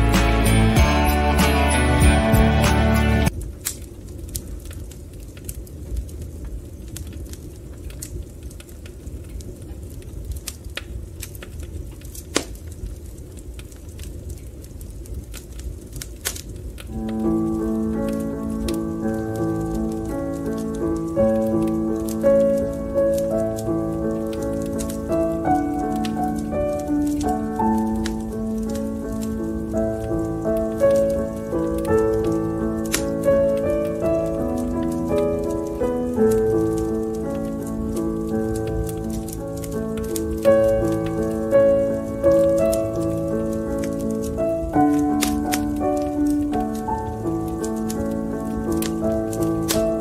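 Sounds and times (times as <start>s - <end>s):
instrumental music with held chords: 0.0s - 3.3s
fire crackling and popping: 0.0s - 50.0s.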